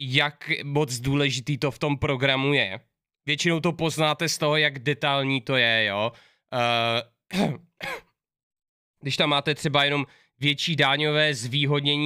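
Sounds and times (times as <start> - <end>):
man clearing his throat: 7.3 - 8.2.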